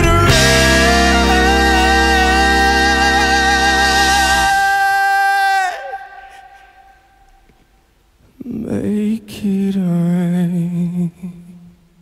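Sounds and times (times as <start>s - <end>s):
man singing held note: 0.0s - 7.2s.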